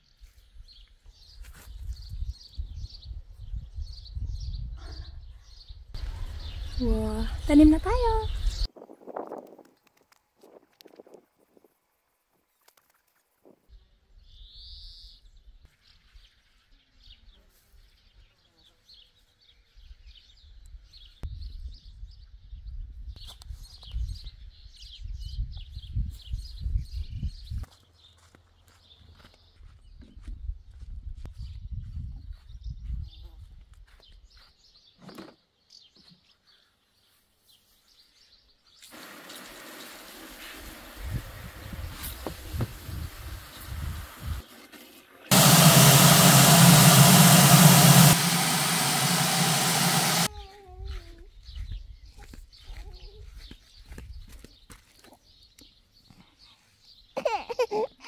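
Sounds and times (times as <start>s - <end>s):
small birds chirping: 0.1s - 8.7s, 13.4s - 39.5s, 49.6s - 58.0s
hose running water into bucket: 38.8s - 50.3s.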